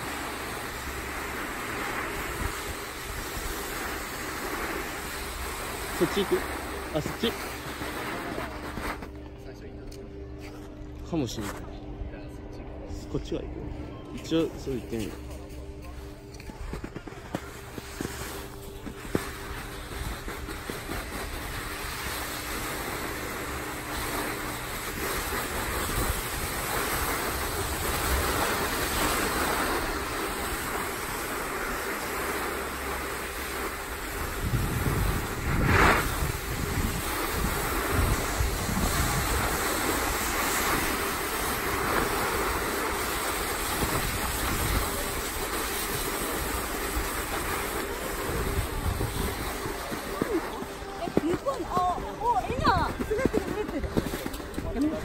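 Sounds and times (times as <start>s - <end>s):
snowboard scraping over snow: 0.0s - 9.2s, 14.3s - 55.0s
wind buffeting microphone: 33.8s - 55.0s.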